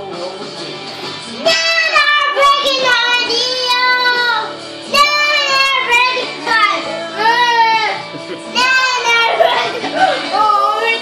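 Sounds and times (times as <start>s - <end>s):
recorded song with guitar: 0.0s - 11.0s
child singing loudly: 1.4s - 11.0s.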